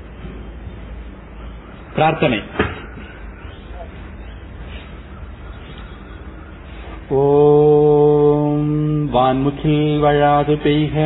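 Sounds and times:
man chanting: 7.1 - 11.0.

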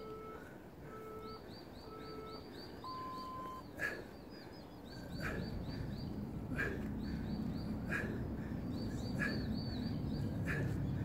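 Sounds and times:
small birds chirping: 0.4 - 11.0.

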